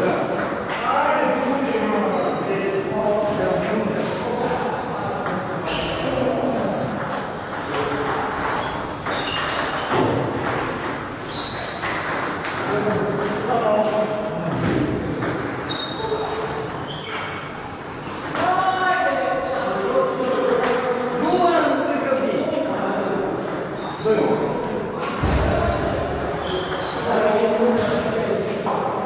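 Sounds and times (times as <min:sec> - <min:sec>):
table tennis balls pinging: 0:00.0 - 0:04.2, 0:05.1 - 0:21.4, 0:22.5 - 0:29.0
people talking: 0:00.0 - 0:08.4, 0:12.6 - 0:14.9, 0:18.2 - 0:29.0.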